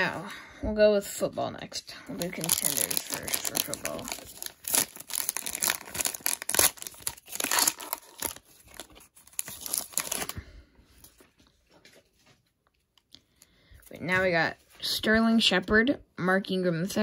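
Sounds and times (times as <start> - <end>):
foil wrapper tearing and crinkling: 2.2 - 10.4.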